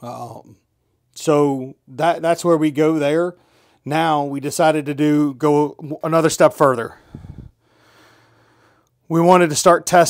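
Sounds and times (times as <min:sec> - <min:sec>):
person speaking: 0:01.2 - 0:07.5
person breathing: 0:03.4 - 0:03.8, 0:06.9 - 0:09.0.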